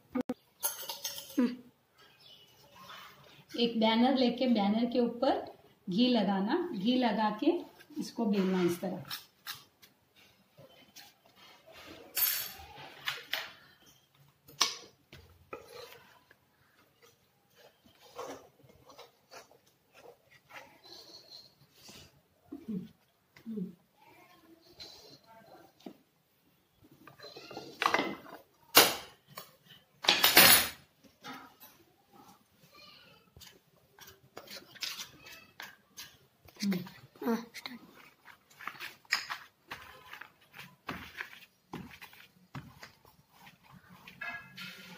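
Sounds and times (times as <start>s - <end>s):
metal spoons clinking and scraping: 0.6s - 1.6s, 11.9s - 14.0s, 17.0s - 22.1s, 33.4s - 36.2s, 44.0s - 44.9s.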